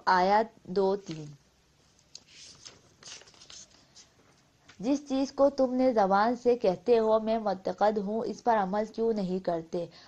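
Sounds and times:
woman narrating: 0:00.0 - 0:01.4, 0:04.8 - 0:10.0
scratchy rustling: 0:01.0 - 0:04.9.

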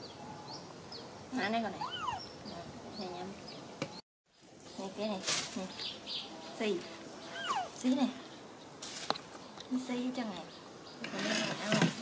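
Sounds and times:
baby macaque high calls: 0:01.7 - 0:02.4, 0:07.2 - 0:07.8.

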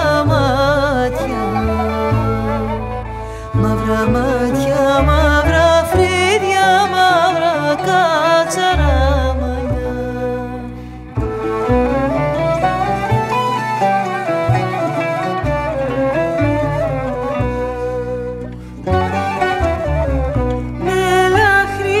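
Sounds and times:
double bass held notes: 0:00.0 - 0:07.2, 0:07.8 - 0:22.0
bowed lyra: 0:00.0 - 0:22.0
plucked qanun: 0:00.0 - 0:22.0.

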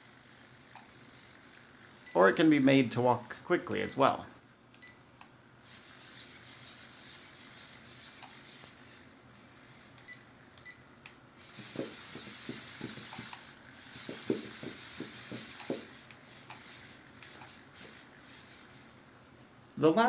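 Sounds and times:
robot feet scraping carpet: 0:11.4 - 0:18.9
robot servos buzzing: 0:11.4 - 0:18.9.

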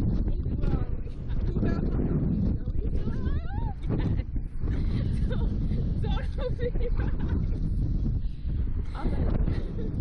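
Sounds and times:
wind rushing on microphone: 0:00.0 - 0:10.0.

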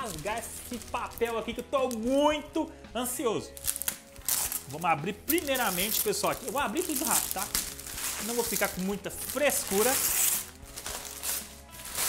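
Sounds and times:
wrapping paper ripping: 0:00.0 - 0:02.1, 0:03.5 - 0:12.0
faint background music: 0:00.0 - 0:12.0.

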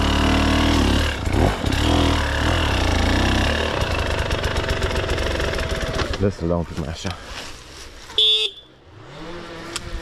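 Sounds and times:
dirt bike horn beep: 0:08.1 - 0:08.8.

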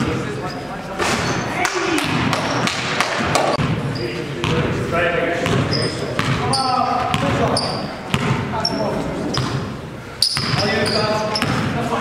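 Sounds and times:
players' voices: 0:00.0 - 0:12.0
basketball bouncing on wooden floor: 0:05.4 - 0:08.4, 0:10.4 - 0:10.7.

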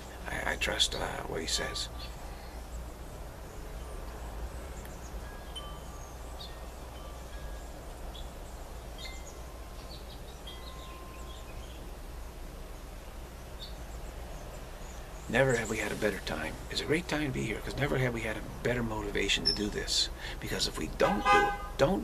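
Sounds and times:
faint wind chimes: 0:00.0 - 0:22.0.

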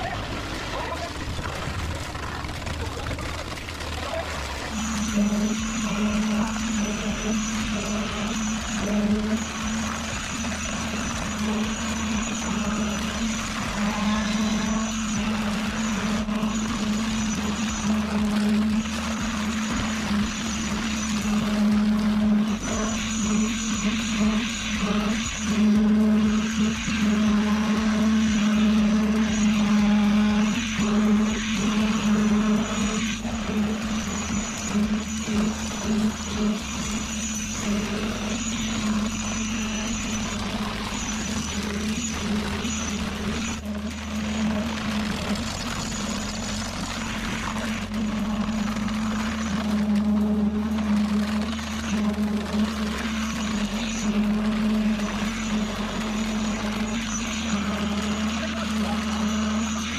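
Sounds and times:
concrete poker vibrator: 0:00.0 - 0:59.9
concrete pump running: 0:00.0 - 0:59.9
steady hum: 0:00.0 - 0:59.9.

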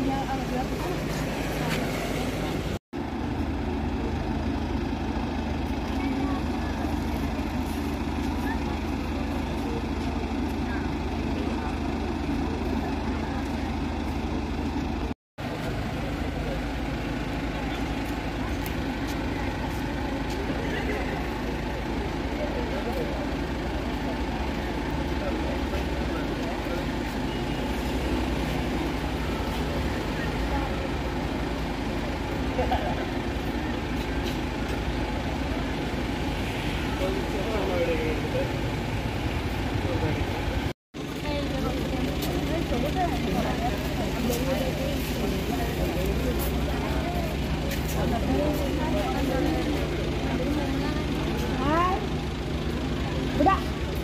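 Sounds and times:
people talking: 0:00.0 - 0:02.8, 0:05.6 - 0:54.0
car engine idling: 0:00.0 - 0:54.0.

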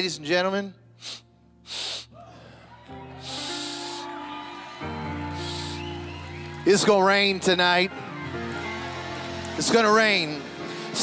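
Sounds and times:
brief hissing sounds: 0:01.0 - 0:02.1, 0:05.4 - 0:05.8.

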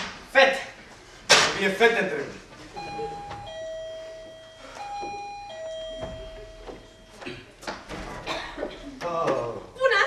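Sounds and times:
two-note doorbell chime: 0:02.8 - 0:07.2.

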